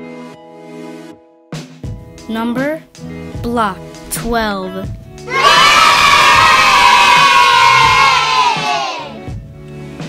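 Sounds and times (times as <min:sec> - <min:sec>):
children cheering: 0:05.3 - 0:09.2.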